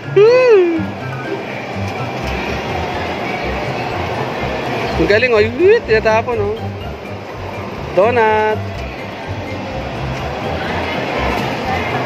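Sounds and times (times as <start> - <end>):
background music with bass line: 0.0 - 12.0.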